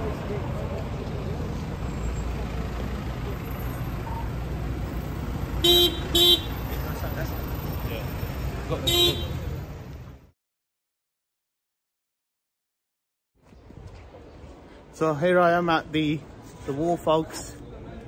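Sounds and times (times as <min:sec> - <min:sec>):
street traffic: 0:00.0 - 0:10.4, 0:13.4 - 0:18.0
vehicle horn tooting: 0:05.6 - 0:06.6, 0:08.8 - 0:09.4.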